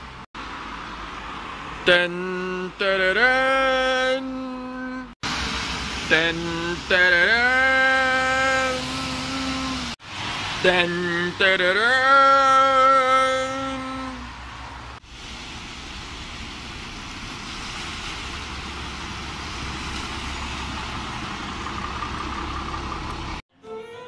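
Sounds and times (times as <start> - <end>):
bus engine rumbling: 0.0 - 24.0
tyres splashing through water: 14.6 - 23.4.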